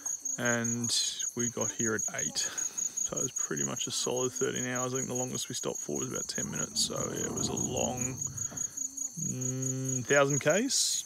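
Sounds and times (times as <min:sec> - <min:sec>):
crickets chirping: 0:00.0 - 0:11.0.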